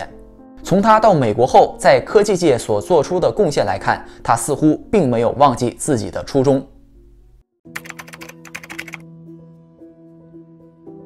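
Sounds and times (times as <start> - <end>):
soft background music: 0.0 - 11.0
keyboard typing clicks: 7.8 - 9.0.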